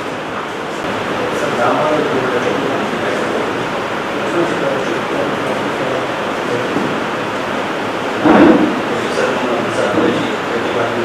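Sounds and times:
steady loud hiss: 0.0 - 11.0.

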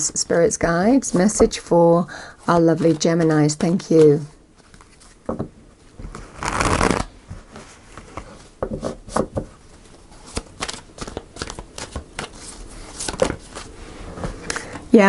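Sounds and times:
cards shuffling: 6.1 - 7.1, 10.1 - 13.8.

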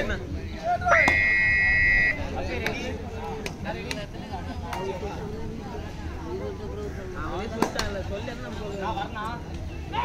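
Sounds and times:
faint crowd voices: 0.0 - 10.0
referee's whistle: 0.9 - 2.3.

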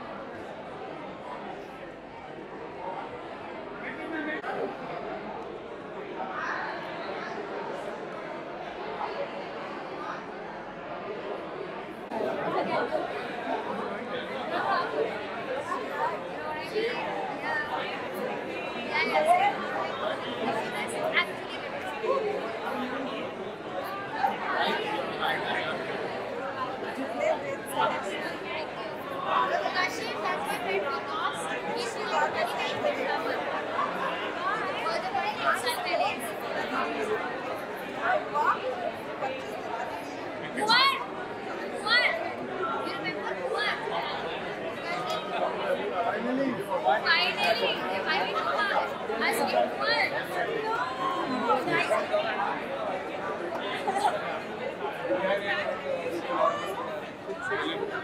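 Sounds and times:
crowd chatter: 0.0 - 58.0.

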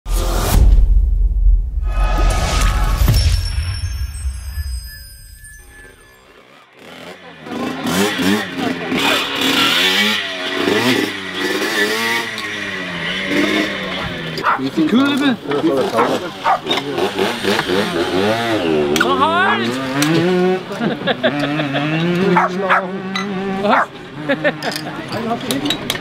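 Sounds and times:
moped engines revving: 6.0 - 26.0
voices: 6.2 - 26.0.

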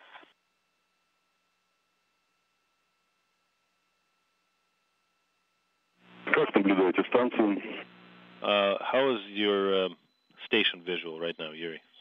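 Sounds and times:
steady low hum: 0.0 - 12.0
voice over radio: 6.2 - 11.8.

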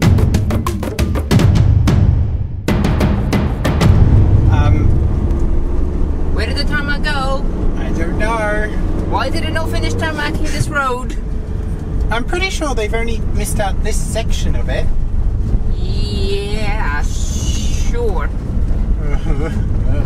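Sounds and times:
vehicle driving on gravel road: 4.4 - 20.0.

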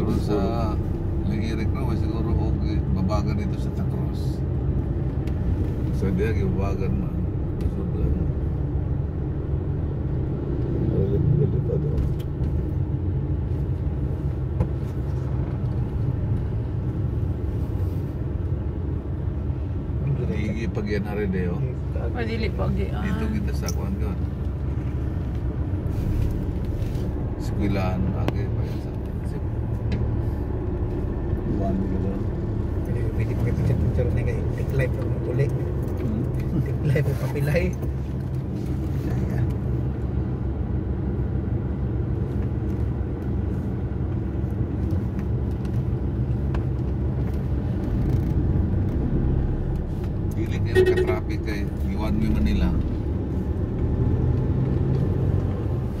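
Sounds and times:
car engine and tyres rumbling: 0.0 - 56.0
constant hum: 0.0 - 56.0.

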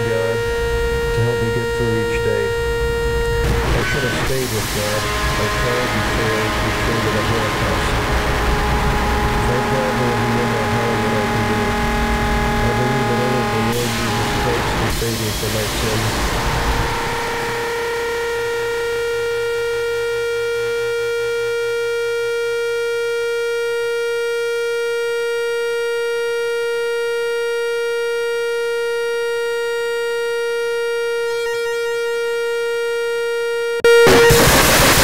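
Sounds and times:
held music tone: 0.0 - 18.9
loud heavy music: 3.4 - 17.8.

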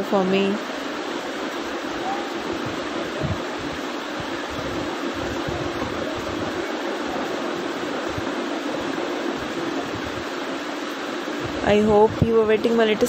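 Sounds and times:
steady hiss: 0.0 - 13.0.

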